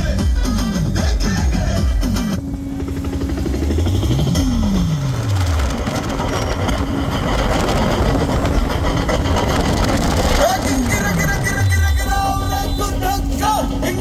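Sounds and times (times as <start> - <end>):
motorcycle and scooter engines rumbling: 0.0 - 14.0.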